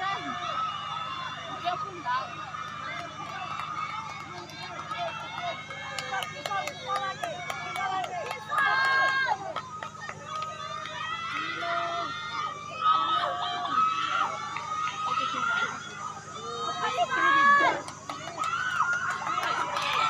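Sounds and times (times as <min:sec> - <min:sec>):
loud drawn-out shout: 0:00.0 - 0:20.0
spectators calling and cheering: 0:00.0 - 0:20.0.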